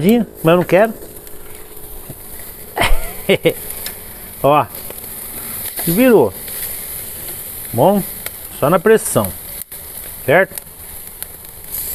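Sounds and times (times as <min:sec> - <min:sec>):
meat sizzling on grill: 0:00.0 - 0:11.9
man laughing: 0:02.8 - 0:03.8.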